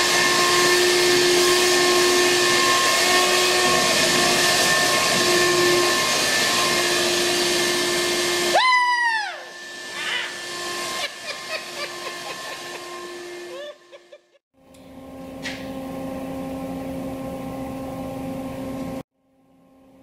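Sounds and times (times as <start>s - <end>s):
vacuum cleaner running: 0.0s - 19.0s.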